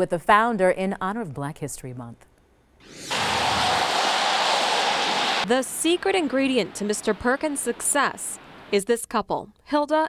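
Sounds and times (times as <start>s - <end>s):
steady rushing noise: 2.8s - 8.8s.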